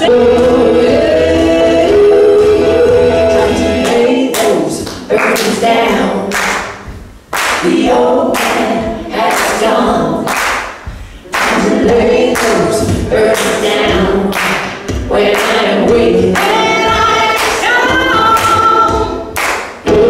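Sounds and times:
woman singing: 0.0 - 6.4, 11.3 - 19.3
a cappella vocal harmonies: 0.0 - 20.0.

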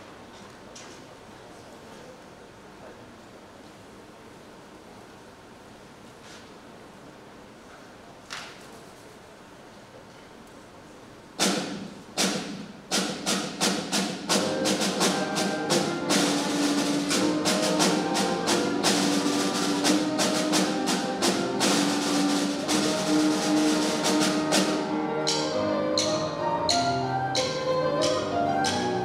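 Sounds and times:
sharp percussive drum strikes: 11.4 - 29.0
piano notes: 13.6 - 29.0
flute notes: 14.3 - 29.0.

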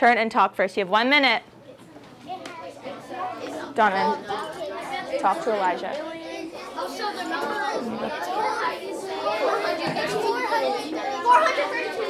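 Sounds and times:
children chattering: 1.4 - 12.0.

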